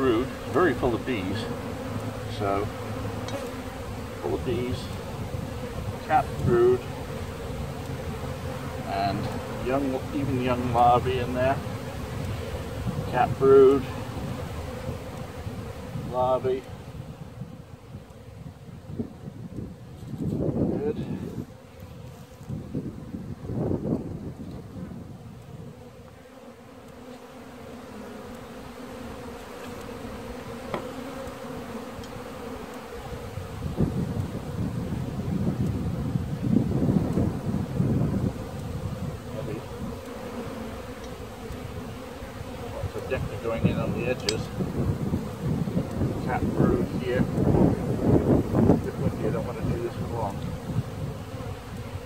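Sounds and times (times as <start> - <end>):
bees buzzing: 0.0 - 52.0.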